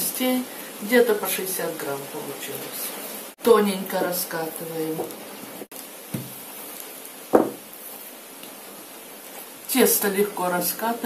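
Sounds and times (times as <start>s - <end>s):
heavy rain hiss: 0.0s - 11.0s
rolling pin knocking on mat: 6.1s - 6.4s, 7.3s - 7.6s.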